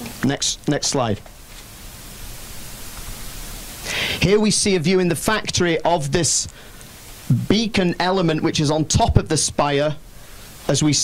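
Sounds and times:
person speaking: 0.0 - 1.3, 3.9 - 6.6, 7.2 - 10.0
microphone hiss: 0.0 - 11.0.

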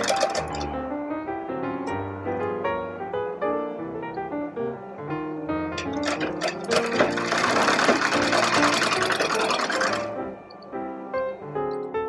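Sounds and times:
sewing machine stitching: 0.0 - 0.7, 5.8 - 10.4
piano music: 0.0 - 12.0.

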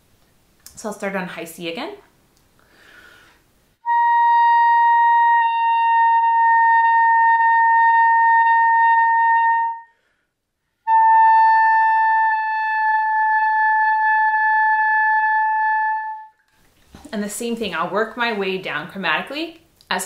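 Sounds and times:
clarinet holding high notes: 3.8 - 9.9, 10.9 - 16.4.

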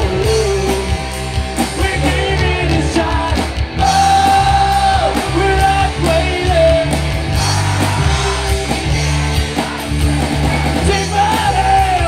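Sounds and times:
live band playing: 0.0 - 12.0
man singing: 0.0 - 12.0.

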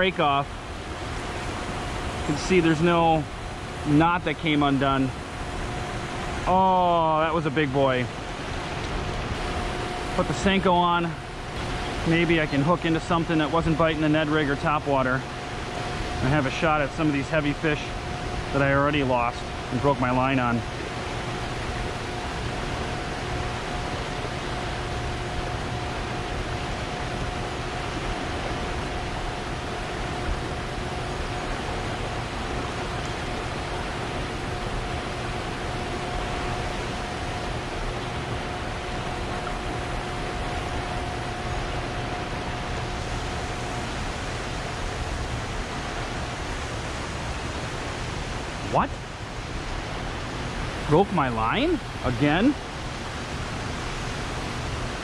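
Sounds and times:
faint steady tone: 0.0 - 55.0.

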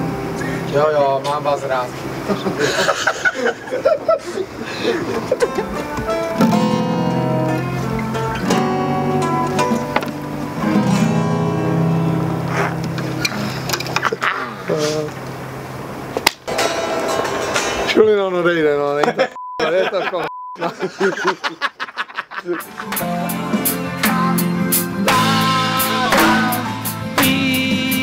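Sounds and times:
band with strummed acoustic guitars: 0.0 - 3.2, 4.4 - 18.0, 22.6 - 28.0.

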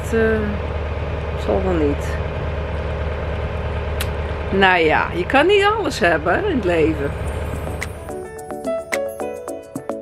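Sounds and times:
motorboat engine humming: 0.0 - 10.0.

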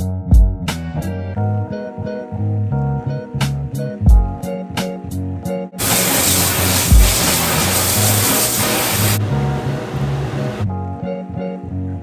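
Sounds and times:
tap water running into sink: 5.8 - 9.2.

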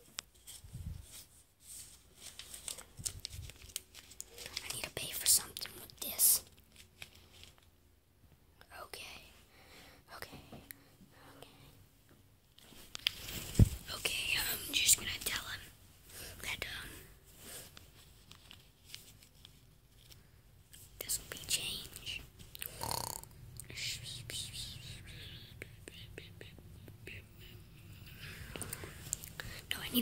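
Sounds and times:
person whispering: 4.4 - 6.5, 8.6 - 9.4, 10.1 - 11.8, 13.9 - 17.1, 21.0 - 27.8, 28.7 - 30.0.

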